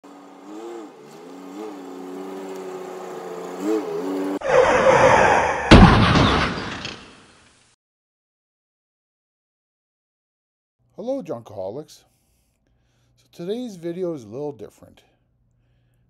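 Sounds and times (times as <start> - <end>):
loud crash with boom: 5.4 - 7.4.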